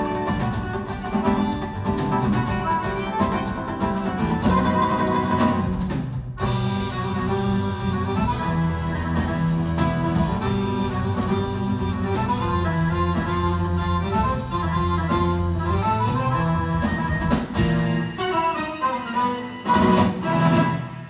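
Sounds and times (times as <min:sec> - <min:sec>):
accordion: 0:00.0 - 0:05.8, 0:06.4 - 0:21.0
acoustic guitars: 0:00.0 - 0:21.0
percussion: 0:00.0 - 0:21.0.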